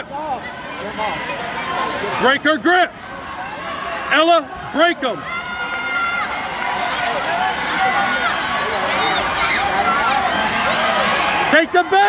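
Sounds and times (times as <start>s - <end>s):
crowd shouting in a large hall: 0.0s - 12.0s.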